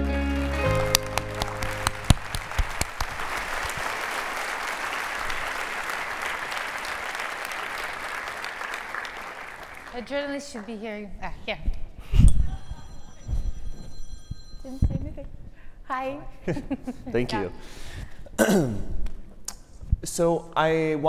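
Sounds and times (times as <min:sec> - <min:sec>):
audience applauding: 0:00.0 - 0:10.8.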